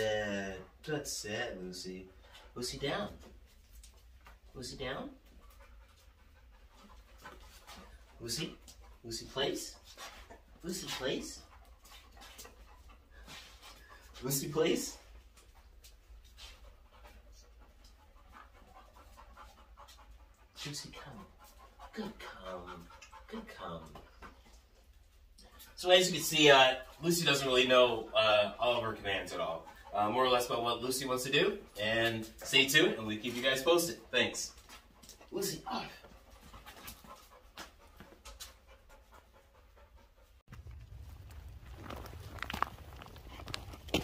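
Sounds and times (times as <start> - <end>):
dog panting: 0.3 - 44.0.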